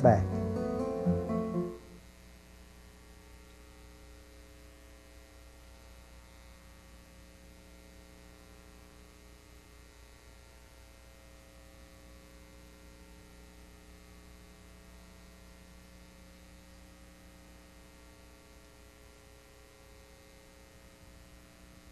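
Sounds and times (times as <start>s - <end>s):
faint mains hum: 0.0s - 21.9s
tape hiss: 0.0s - 21.9s.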